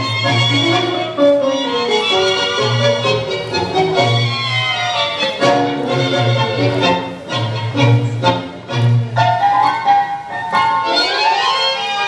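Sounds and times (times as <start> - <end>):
tango music over loudspeakers: 0.0 - 12.0.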